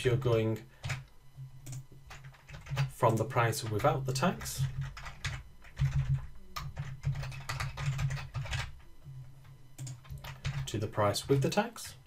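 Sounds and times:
computer keyboard typing: 0.3s - 8.8s, 9.8s - 12.0s.

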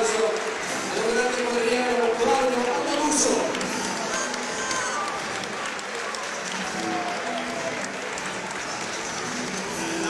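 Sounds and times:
crowd applauding: 0.0s - 10.0s.

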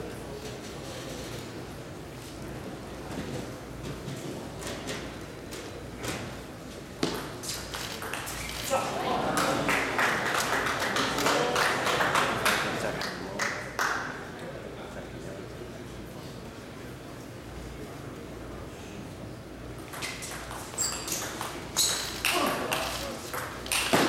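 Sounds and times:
spectators' voices: 8.6s - 13.4s.

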